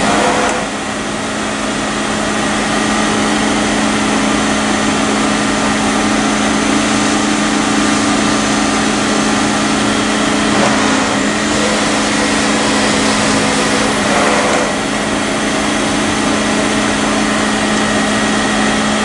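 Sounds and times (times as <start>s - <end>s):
machine hum and whir: 0.0s - 19.0s.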